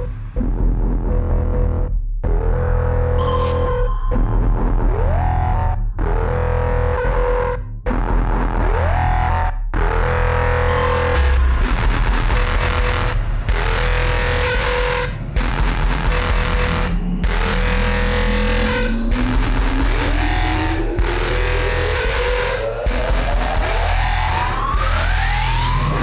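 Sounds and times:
electronic dance music: 0:08.6 - 0:26.0
synth riser climbing in pitch: 0:10.6 - 0:26.0.

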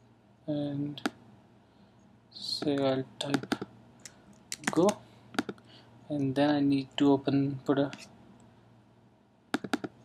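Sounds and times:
keyboard key taps: 0:09.6 - 0:09.9.

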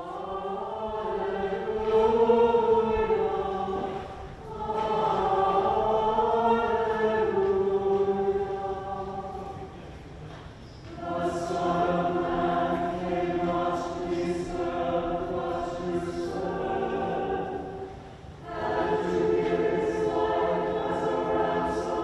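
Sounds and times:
church choir singing: 0:00.0 - 0:22.0.

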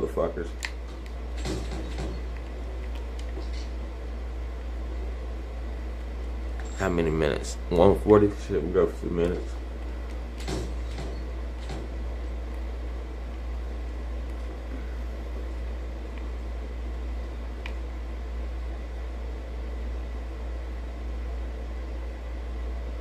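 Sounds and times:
low hum: 0:00.0 - 0:23.0.

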